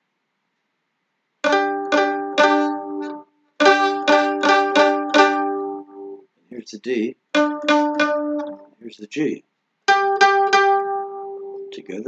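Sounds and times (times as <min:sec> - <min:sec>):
mandolin double stop strikes: 0:01.4 - 0:06.2, 0:07.3 - 0:08.8, 0:09.9 - 0:12.0.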